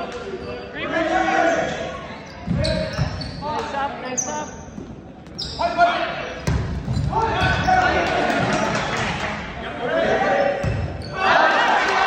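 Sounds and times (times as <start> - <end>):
sneaker squeaks on hardwood: 2.2 - 5.8, 6.4 - 7.8
players shouting: 7.0 - 12.0.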